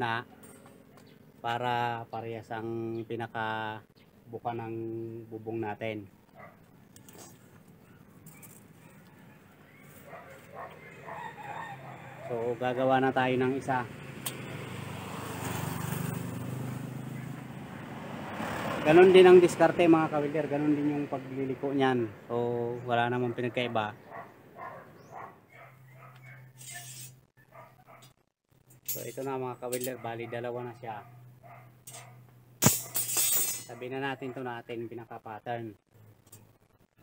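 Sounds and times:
passing vehicle engine hum: 9.1s - 22.9s
sharp ringing metal clank: 32.6s - 33.7s.

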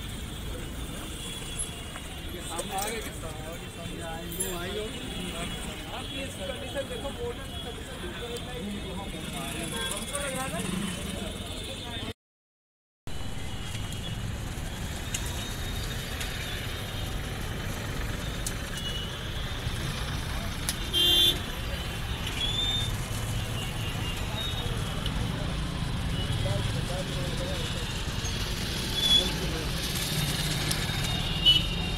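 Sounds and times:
road traffic rumbling: 0.0s - 12.1s, 13.1s - 31.9s
vehicle horn honking: 20.9s - 21.4s.

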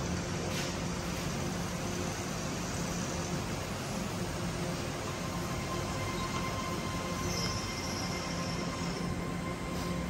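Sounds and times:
electric fans and air conditioners: 0.0s - 10.0s.

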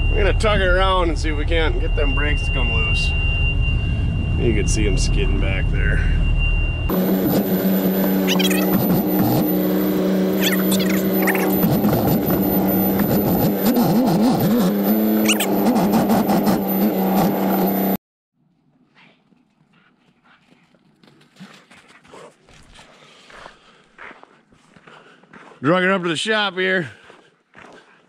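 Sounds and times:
faint outdoor sound: 5.8s - 25.4s
heavy diesel engine running: 6.9s - 18.0s.

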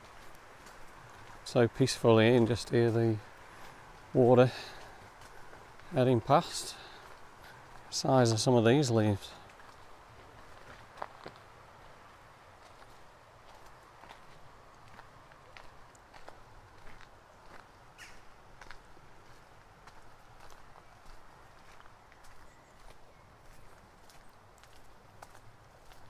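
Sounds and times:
flowing river water: 0.0s - 26.0s
footsteps on gravel path: 0.0s - 26.0s.

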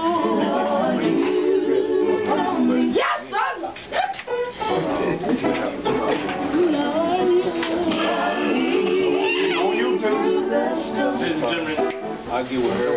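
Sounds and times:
voices singing in harmony: 0.0s - 12.9s.

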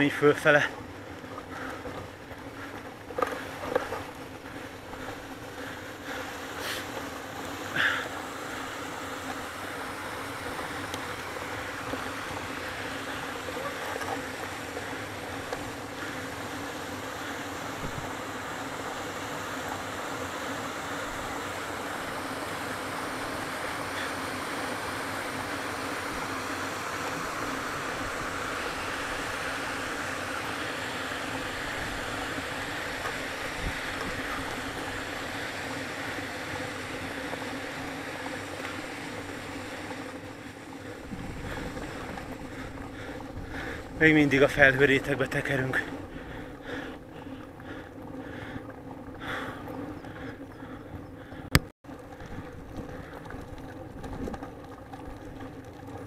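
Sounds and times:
faint steady hum: 0.0s - 56.0s
wind noise on microphone: 41.0s - 44.0s.

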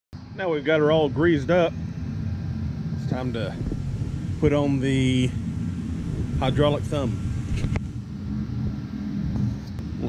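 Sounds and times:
faint hum: 0.2s - 10.0s
low rumble of machinery: 0.2s - 10.0s.

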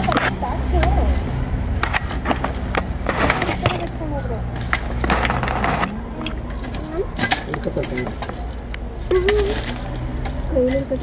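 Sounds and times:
metal hook scraping on bricks: 0.0s - 11.0s.

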